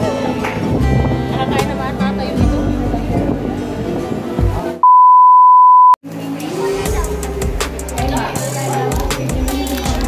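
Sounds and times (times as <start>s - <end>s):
electronic censor beep: 4.8s - 6.0s
background music: 6.1s - 10.0s.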